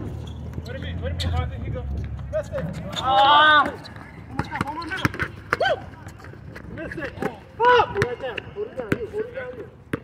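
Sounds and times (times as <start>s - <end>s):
players calling out: 2.4s - 9.4s.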